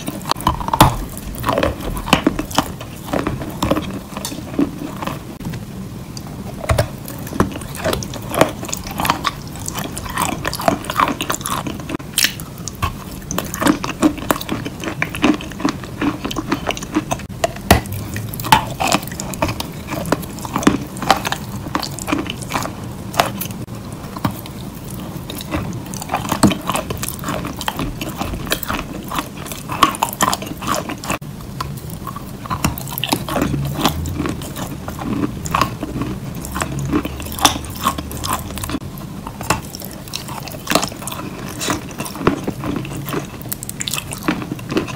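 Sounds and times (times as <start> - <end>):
biting and chewing dry clay: 0.0 - 5.5, 6.1 - 44.9.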